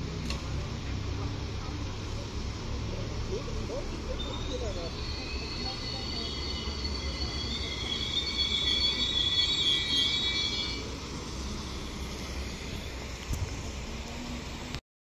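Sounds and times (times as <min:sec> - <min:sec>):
train rumble: 0:00.0 - 0:14.8
train brakes squealing: 0:03.9 - 0:12.8.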